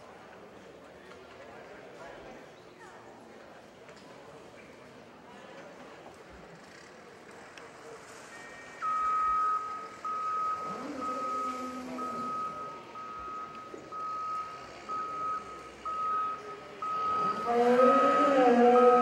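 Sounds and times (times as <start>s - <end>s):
reversing alarm beeping: 8.3s - 19.0s.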